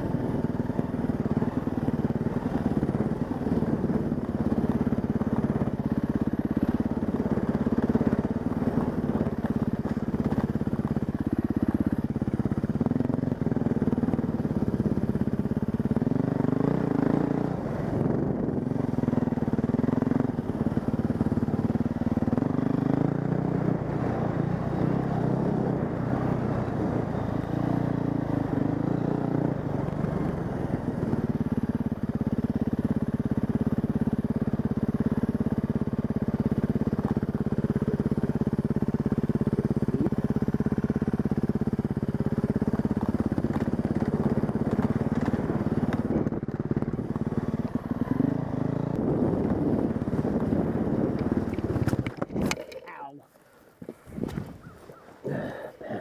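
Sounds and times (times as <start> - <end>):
dirt bike engine revving: 0.0 - 31.5, 36.6 - 53.0.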